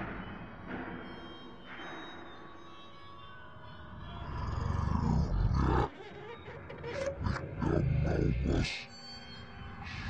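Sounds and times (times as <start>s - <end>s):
deep growling roar: 4.2s - 5.9s.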